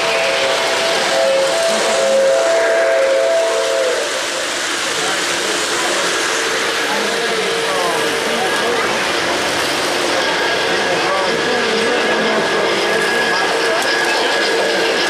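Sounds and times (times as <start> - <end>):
model train whistle chord: 0.0 - 4.1
crowd chatter: 0.0 - 15.0.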